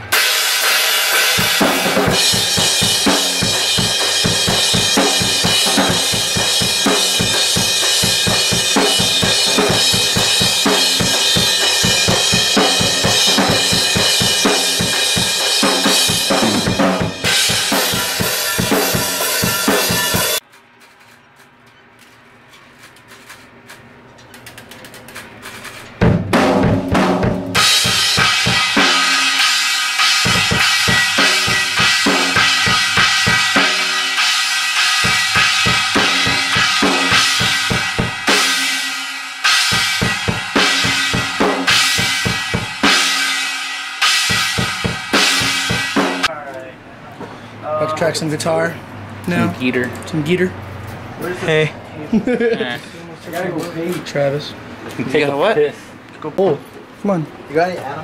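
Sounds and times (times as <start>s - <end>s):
drum kit played hard and fast: 0.0s - 20.4s, 26.0s - 46.3s.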